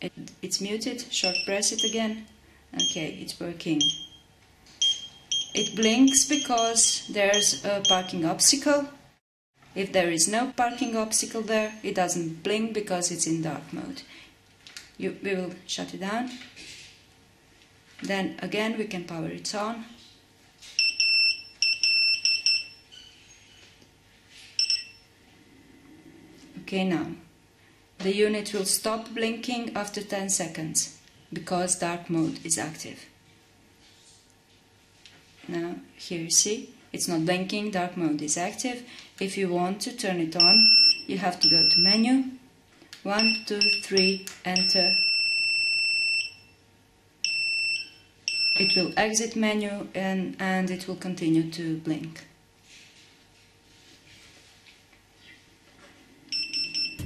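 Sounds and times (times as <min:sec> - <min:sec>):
high-pitched electronic beeps: 0:04.8 - 0:08.2.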